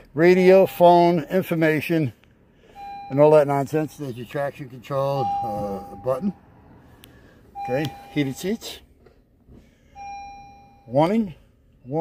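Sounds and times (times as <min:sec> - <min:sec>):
car warning chime: 0:00.2 - 0:01.9, 0:02.6 - 0:06.7, 0:07.5 - 0:08.9, 0:09.8 - 0:12.0.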